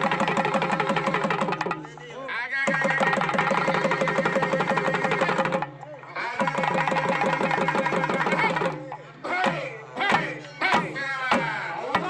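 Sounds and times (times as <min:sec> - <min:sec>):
frame drum and barrel drum beating: 0:00.0 - 0:02.1, 0:02.7 - 0:12.0.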